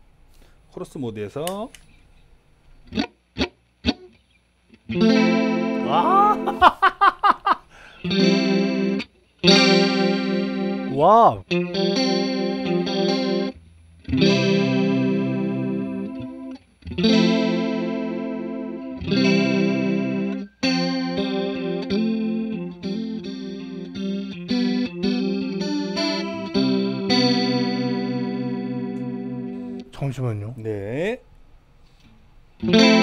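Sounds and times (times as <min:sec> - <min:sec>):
clean electric guitar chords: 0:04.8 - 0:06.8, 0:07.9 - 0:29.9, 0:32.6 - 0:33.0.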